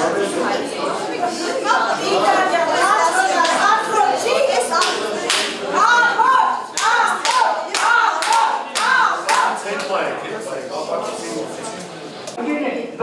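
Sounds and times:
voices chanting: 0:01.6 - 0:09.9
crowd clapping in rhythm: 0:04.7 - 0:05.6, 0:06.7 - 0:10.1.

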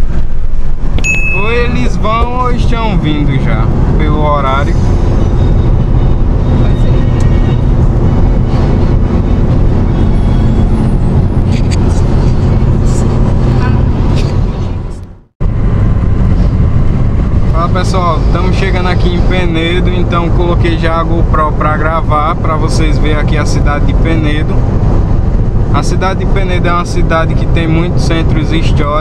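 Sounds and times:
car cabin road noise: 0:00.0 - 0:29.0.

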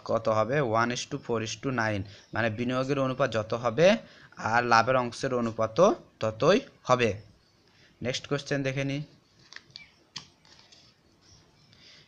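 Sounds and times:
paper rustling: 0:09.2 - 0:11.5.

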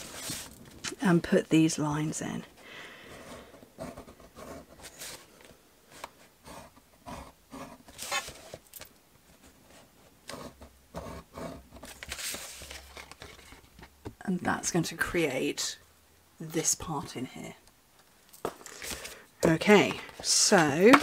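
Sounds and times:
card rustling: 0:00.0 - 0:01.0, 0:03.2 - 0:06.6, 0:07.8 - 0:14.0, 0:18.4 - 0:21.0.

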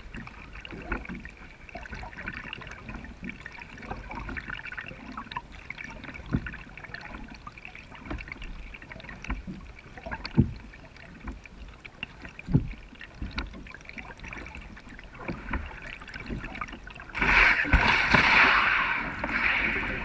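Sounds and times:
paddle dipping and splashing: 0:00.0 - 0:20.0
water dripping off paddle: 0:00.1 - 0:19.5.

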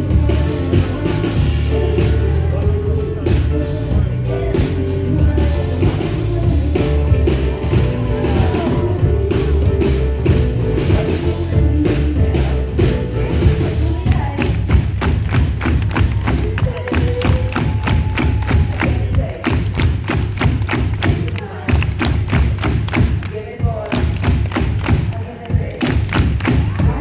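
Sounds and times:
grand piano playing: 0:00.0 - 0:19.2
live band music: 0:00.0 - 0:27.0
pounding beat: 0:00.0 - 0:27.0.

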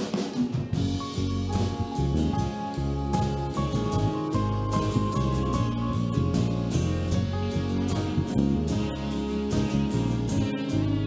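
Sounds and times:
bass: 0:00.0 - 0:11.0
drums keeping a steady beat: 0:00.0 - 0:11.0
held notes: 0:00.8 - 0:11.0.

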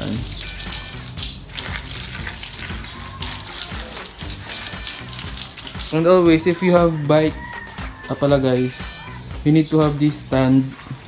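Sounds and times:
hose spray hissing and splashing: 0:00.0 - 0:06.5.

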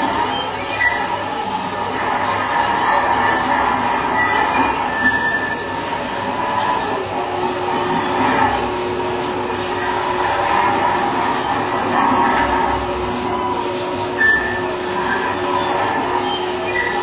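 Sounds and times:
grinding electronic noise: 0:00.0 - 0:17.0
low held tone: 0:00.0 - 0:17.0.

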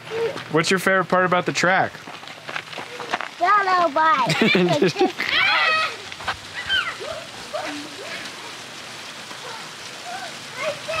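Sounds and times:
steady hiss: 0:00.0 - 0:11.0
children calling out: 0:02.8 - 0:11.0.

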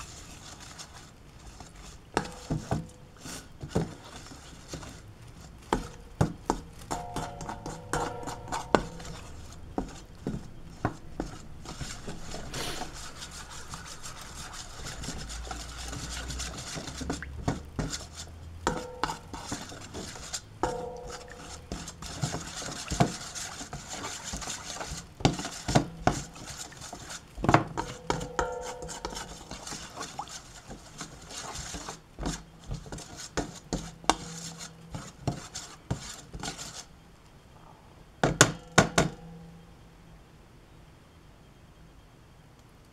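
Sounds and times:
spoon stirring batter in metal bowl: 0:00.0 - 0:37.0
metal bowl ringing: 0:06.9 - 0:09.4, 0:18.7 - 0:19.3, 0:20.6 - 0:21.7, 0:28.0 - 0:29.2, 0:39.1 - 0:39.8.

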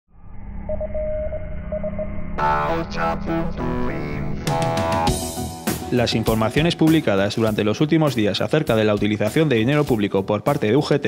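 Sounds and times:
low bass drone: 0:00.1 - 0:05.6.

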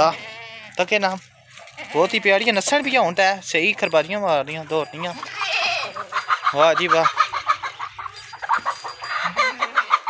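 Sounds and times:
goat kid bleating: 0:00.0 - 0:00.9, 0:01.5 - 0:03.1, 0:05.1 - 0:07.7.

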